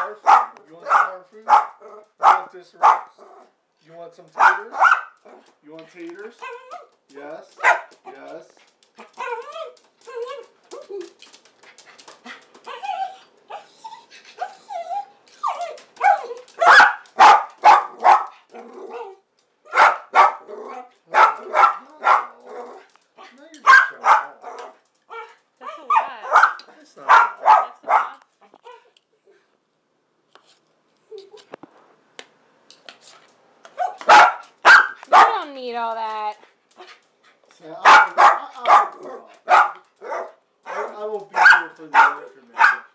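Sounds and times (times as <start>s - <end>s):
small dog barking: 0.0s - 3.5s, 4.4s - 5.5s, 7.6s - 8.0s, 15.5s - 22.9s, 23.6s - 28.2s, 33.8s - 35.4s, 37.8s - 42.9s
small dog whining: 12.7s - 16.6s.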